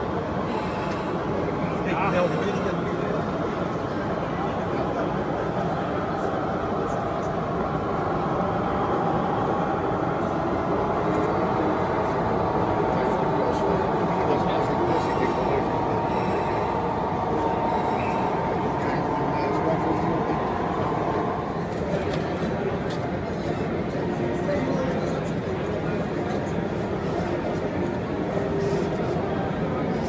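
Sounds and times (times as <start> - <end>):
crowd chatter: 0.0 - 30.0
model train running on track: 0.0 - 30.0.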